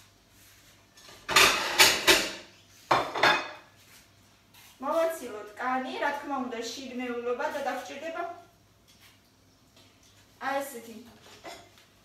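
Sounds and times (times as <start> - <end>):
knife and apples scraping on plate: 0.6 - 4.8.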